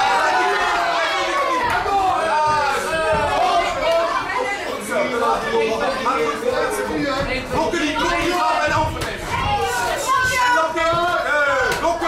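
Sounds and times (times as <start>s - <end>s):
voices calling out and talking: 0.0s - 12.0s.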